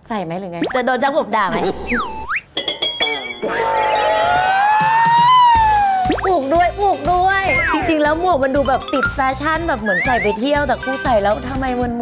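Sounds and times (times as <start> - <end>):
rising whistle-like tone: 9.9 - 10.4.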